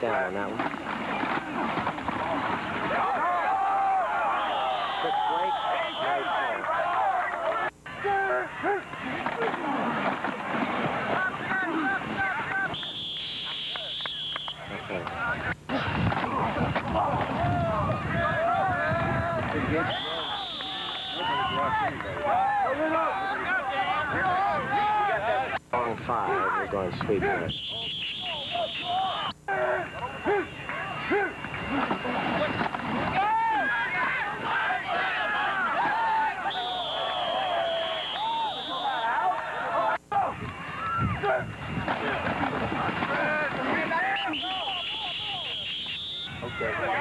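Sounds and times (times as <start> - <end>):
players shouting and talking: 0.0 - 47.0
referee's whistle blasts: 4.2 - 6.6, 12.5 - 14.9, 19.8 - 21.6, 27.5 - 32.6, 36.3 - 39.2, 43.9 - 47.0.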